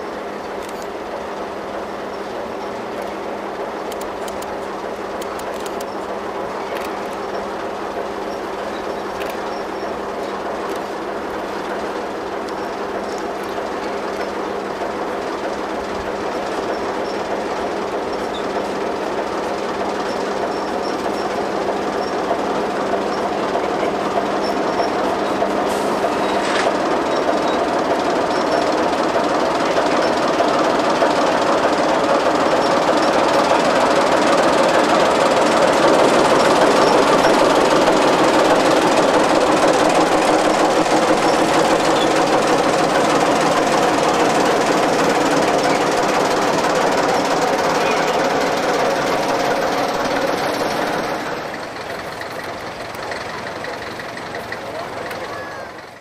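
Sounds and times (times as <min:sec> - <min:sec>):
diesel locomotive engine: 0:00.0 - 0:56.0
goods wagons rolling: 0:32.5 - 0:56.0.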